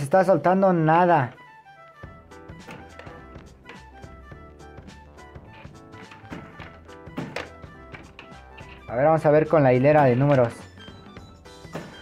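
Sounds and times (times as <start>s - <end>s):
music: 0.0s - 12.0s
balls clicking off metal pins: 5.4s - 9.0s, 9.6s - 10.8s.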